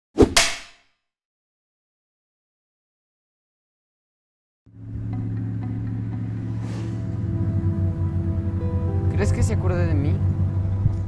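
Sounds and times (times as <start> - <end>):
low film score drone: 4.7 - 11.0.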